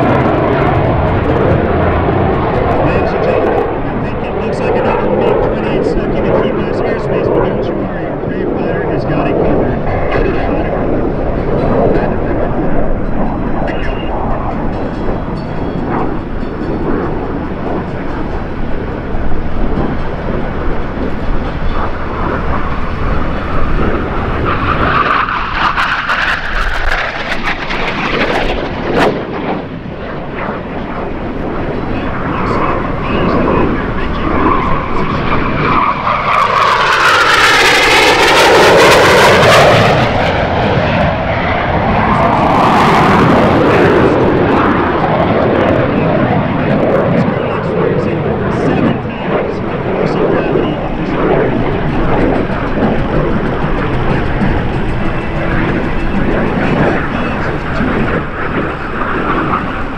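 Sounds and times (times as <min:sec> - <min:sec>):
jet flying overhead: 0:00.0 - 0:59.9.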